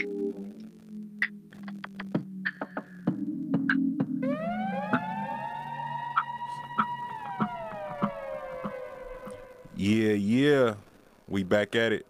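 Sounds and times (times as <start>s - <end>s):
ticking beat: 1.2s - 9.9s
electronic siren tone sliding: 4.2s - 9.8s.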